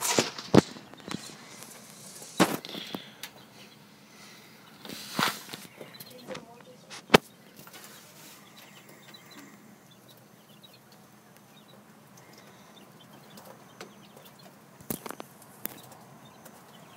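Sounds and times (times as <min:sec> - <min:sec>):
quail chirping: 0:00.4 - 0:16.9.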